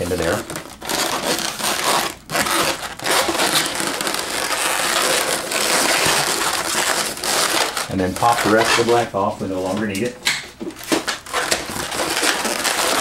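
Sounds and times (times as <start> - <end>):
balloons rubbing squeak: 0.0 - 9.6, 10.8 - 13.0.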